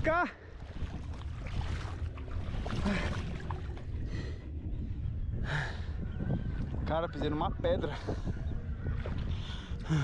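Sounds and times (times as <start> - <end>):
shallow river water: 0.0 - 10.0
wind rumbling on microphone: 0.0 - 10.0.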